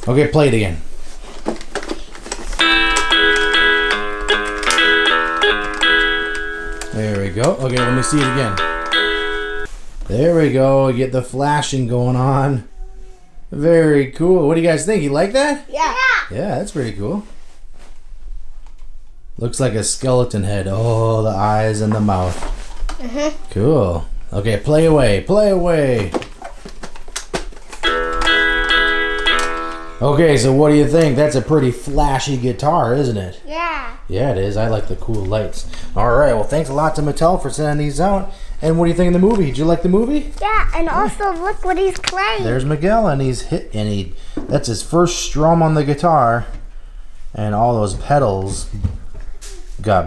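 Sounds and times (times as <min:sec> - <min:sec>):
toy guitar synthesized melody: 0:02.6 - 0:09.7, 0:27.8 - 0:31.6.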